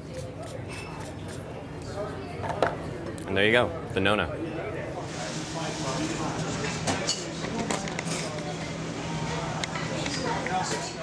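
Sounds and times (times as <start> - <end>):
bar-room background: 0.0 - 11.0.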